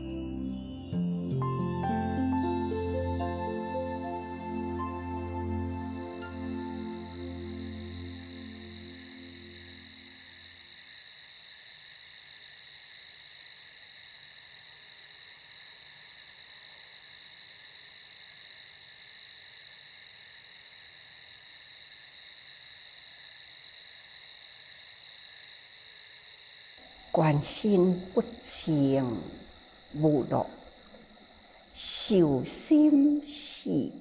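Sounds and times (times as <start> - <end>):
soft music: 0.0 - 10.5
shrill trill of night animals: 2.1 - 34.0.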